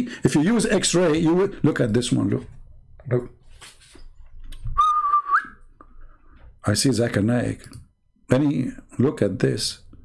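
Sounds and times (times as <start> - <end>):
person whistling a note: 4.8 - 5.6.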